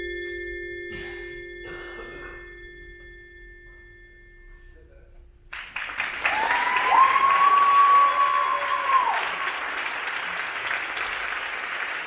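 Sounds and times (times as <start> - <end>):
bell-like percussion tones ringing: 0.0 - 5.1
low band note ringing: 0.0 - 5.4.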